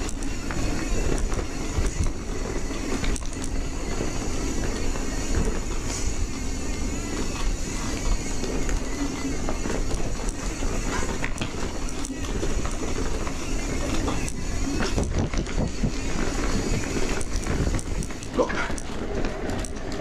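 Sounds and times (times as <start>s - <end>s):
bike rattling: 0.0s - 20.0s
tyres rumbling on rough trail: 0.0s - 20.0s.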